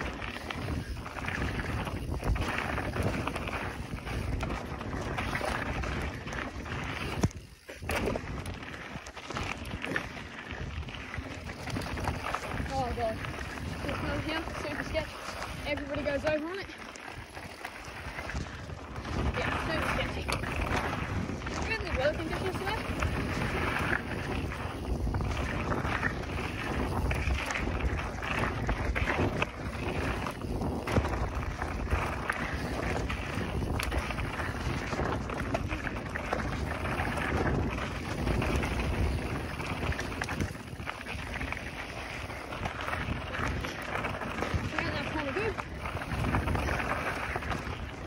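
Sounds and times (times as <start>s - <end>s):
bike tyre rumble and rattle: 0.0s - 48.0s
wind on microphone: 0.0s - 48.0s.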